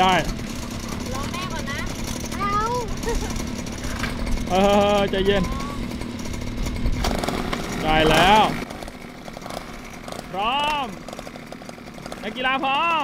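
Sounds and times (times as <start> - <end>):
mini-bike engines idling: 0.0 - 13.0.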